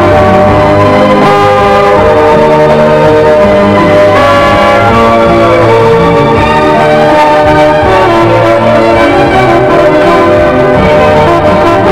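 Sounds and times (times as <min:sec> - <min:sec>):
orchestral film music: 0:00.0 - 0:11.9.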